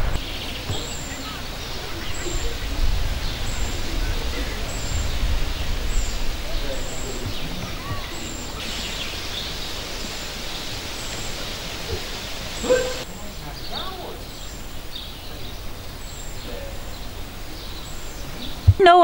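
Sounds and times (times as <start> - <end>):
birds chirping: 0.0 - 19.0
faint murmuring voices: 0.0 - 19.0
wind rumbling on microphone: 0.0 - 19.0.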